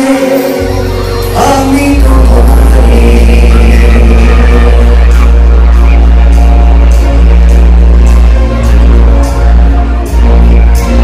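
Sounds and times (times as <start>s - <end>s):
deep steady bass: 0.0s - 11.0s
live band music over pa: 0.0s - 11.0s.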